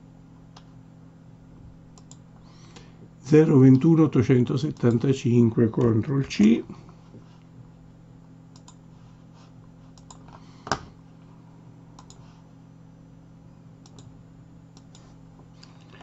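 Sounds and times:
faint low hum: 0.0 - 16.0.

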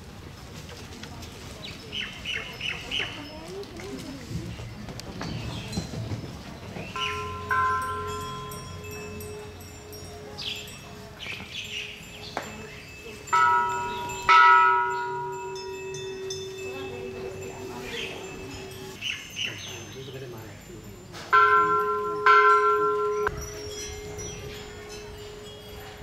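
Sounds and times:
metal temple bells struck: 7.0 - 20.3, 21.3 - 26.0.

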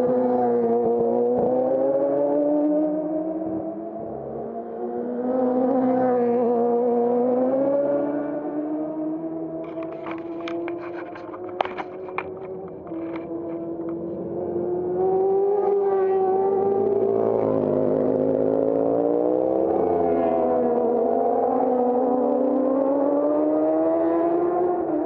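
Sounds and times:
racing motorcycle passing: 4.2 - 25.0.

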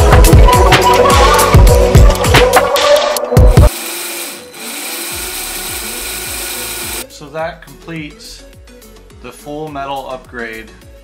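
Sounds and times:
electric motor whirring: 3.7 - 7.0.

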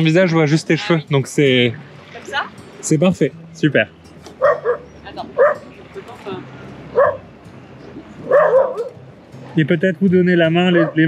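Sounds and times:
dog barking: 4.4 - 5.7, 6.9 - 7.3, 8.2 - 9.0, 10.6 - 11.0.

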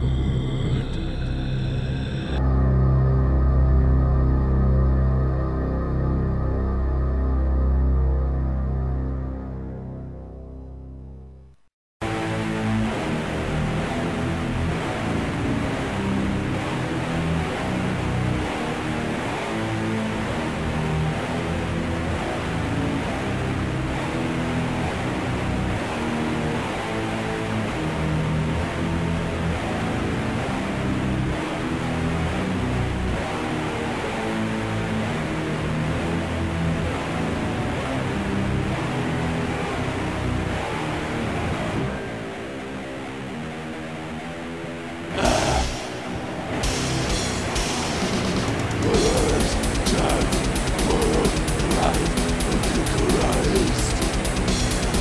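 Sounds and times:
distorted metal guitars and bass: 0.0 - 9.8, 12.0 - 55.0.

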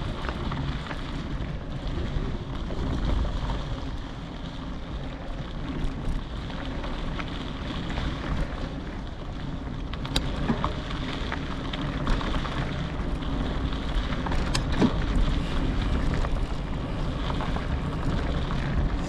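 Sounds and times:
low rumble: 0.0 - 19.0
wind on microphone: 11.9 - 19.0.

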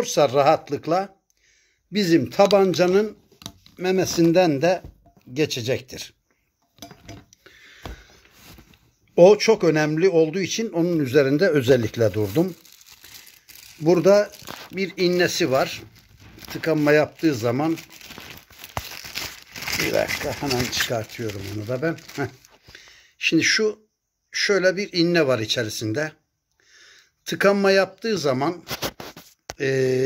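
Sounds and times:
metal cup clicks and knocks: 6.6 - 7.4
plastic packaging crinkling: 10.8 - 22.7.

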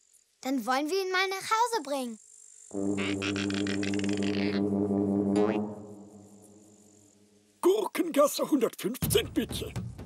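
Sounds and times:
deep droning note: 2.7 - 7.3.

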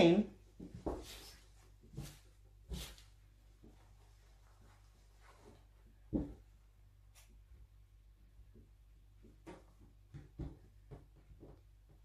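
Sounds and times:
fabric rustling by hand: 0.5 - 6.6.

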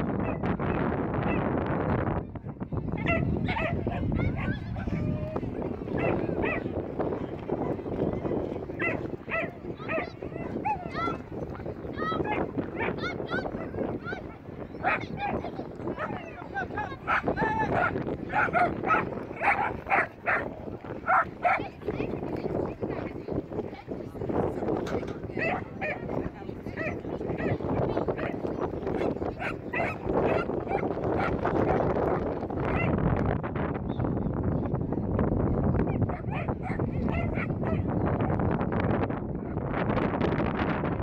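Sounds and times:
outdoor noise: 0.0 - 41.0
background chatter: 0.1 - 39.9
dog barking in high yips: 3.0 - 5.0, 6.0 - 6.6, 8.8 - 11.0, 14.8 - 15.4, 17.0 - 20.5, 21.1 - 21.6, 29.0 - 31.4, 32.7 - 33.0, 35.9 - 37.9.

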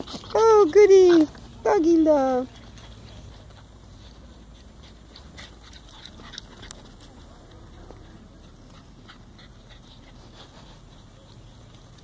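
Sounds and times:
small dogs playing on grass: 0.0 - 12.0.

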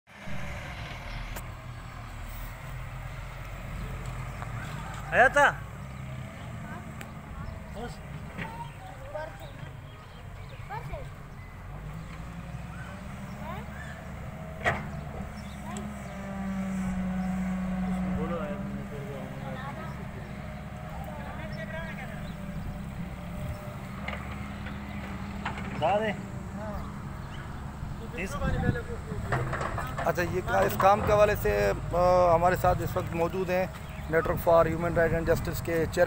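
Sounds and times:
excavator diesel engine humming: 0.2 - 36.0.

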